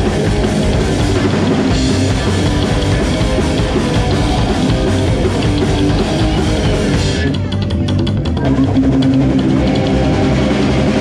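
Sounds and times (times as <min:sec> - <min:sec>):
live punk rock band: 0:00.0 - 0:11.0.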